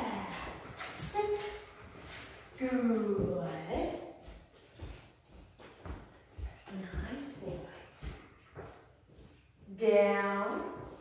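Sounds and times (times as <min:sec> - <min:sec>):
footsteps on hardwood floor: 0:00.0 - 0:11.0.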